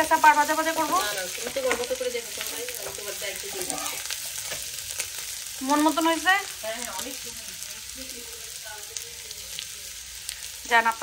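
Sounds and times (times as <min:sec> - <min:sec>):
food sizzling in a frying pan: 0:00.0 - 0:11.0.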